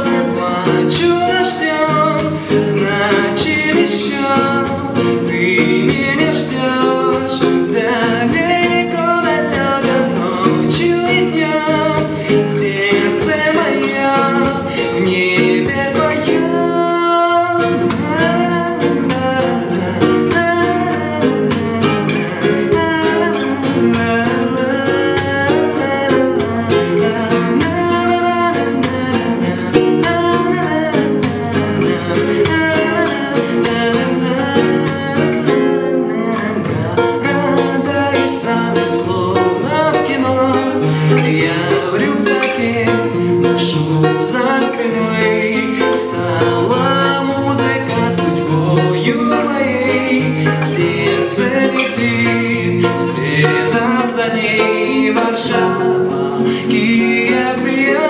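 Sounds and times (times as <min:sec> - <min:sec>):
classical guitar strummed: 0:00.0 - 0:58.0
young man singing: 0:00.0 - 0:58.0.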